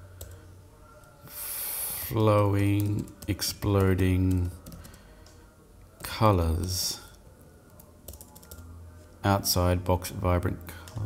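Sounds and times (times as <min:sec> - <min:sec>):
computer keyboard typing: 0:02.2 - 0:05.4, 0:07.7 - 0:08.6.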